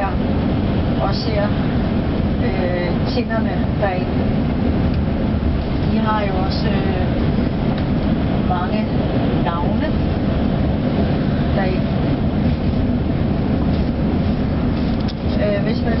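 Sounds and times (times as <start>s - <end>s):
vehicle rumble from inside cabin: 0.0s - 16.0s.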